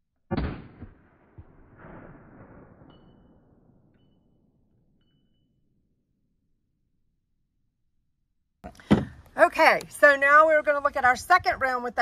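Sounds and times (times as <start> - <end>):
pistol shot with echoes: 0.3 - 3.2.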